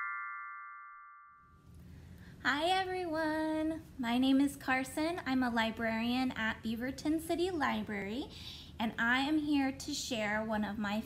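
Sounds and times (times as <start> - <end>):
bell-like chime jingle: 0.0 - 1.5.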